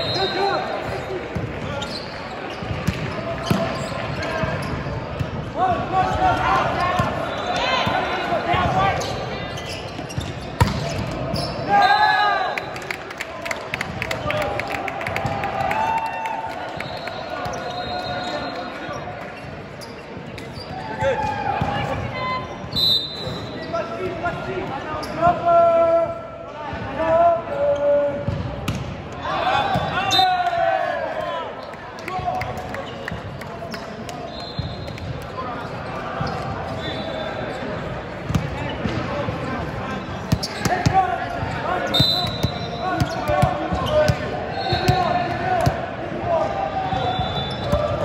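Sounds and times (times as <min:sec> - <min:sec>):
players shouting: 0:05.6 - 0:09.4, 0:29.2 - 0:32.6, 0:38.9 - 0:48.0
volleyballs struck and bouncing: 0:10.1 - 0:11.3.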